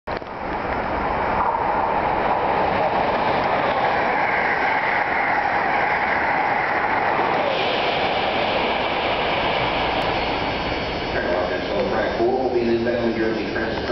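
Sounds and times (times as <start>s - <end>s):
high-speed train passing: 0.1s - 13.9s.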